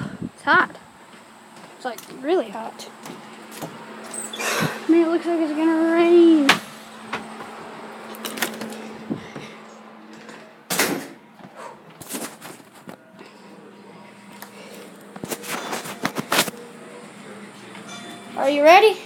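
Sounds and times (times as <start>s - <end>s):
steady low hum: 0.0s - 19.0s
door opening and shutting: 3.6s - 4.8s, 6.4s - 9.5s, 10.2s - 11.2s.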